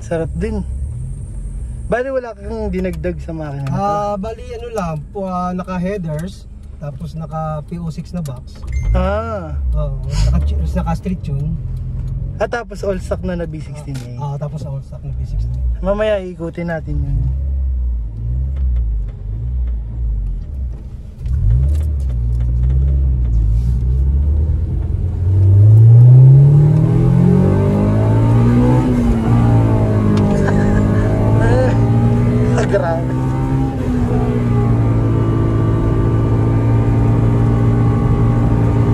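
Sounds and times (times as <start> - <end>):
car engine revving: 0.0 - 38.9
road and wind noise: 0.0 - 38.9.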